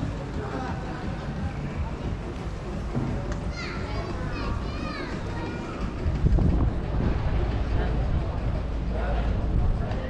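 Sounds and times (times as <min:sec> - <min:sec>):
people's voices: 0:00.0 - 0:10.0.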